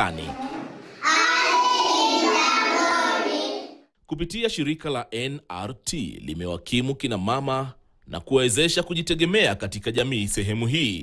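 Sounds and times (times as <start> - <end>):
children singing in unison: 0.6 - 3.8.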